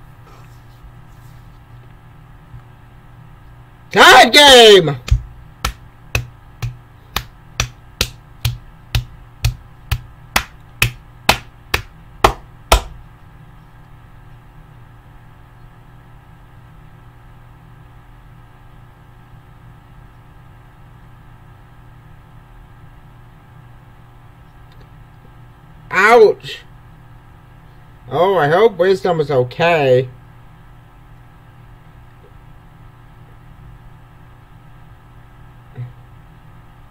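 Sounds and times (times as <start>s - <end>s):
low room hum: 0.0s - 36.9s
person clapping hands: 5.1s - 13.0s.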